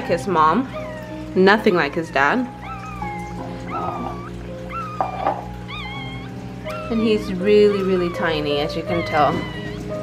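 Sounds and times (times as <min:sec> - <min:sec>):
puppy squeaking: 0:00.0 - 0:10.0.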